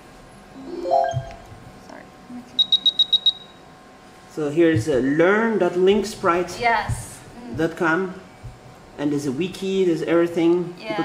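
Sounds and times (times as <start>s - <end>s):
high-pitched electronic beeps: 0.6s - 1.5s, 2.6s - 3.6s.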